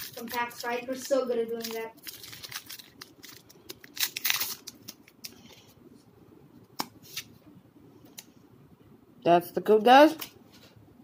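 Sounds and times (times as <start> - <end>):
foil wrapper crinkling: 0.0 - 5.4
cards being handled: 0.0 - 5.5.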